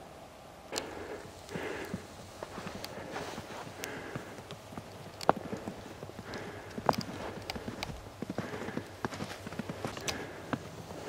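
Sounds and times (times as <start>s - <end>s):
footsteps in snow: 1.0s - 11.0s.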